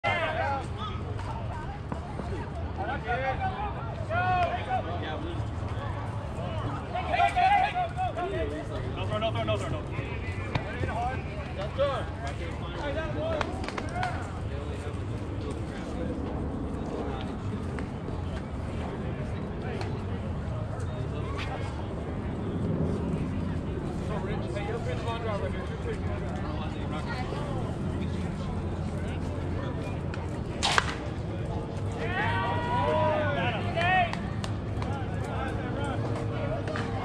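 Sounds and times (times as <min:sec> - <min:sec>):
people calling out and chatting: 0:00.0 - 0:37.0.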